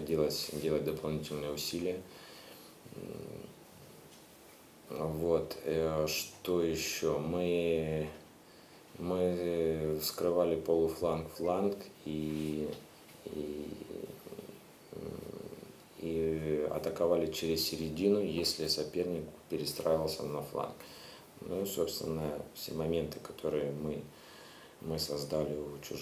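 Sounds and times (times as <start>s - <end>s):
person speaking: 0.0s - 4.2s, 4.8s - 8.3s, 8.9s - 24.2s, 24.8s - 26.0s
faint hum: 0.0s - 26.0s
man breathing in: 2.1s - 3.0s, 20.8s - 21.4s, 24.1s - 24.8s.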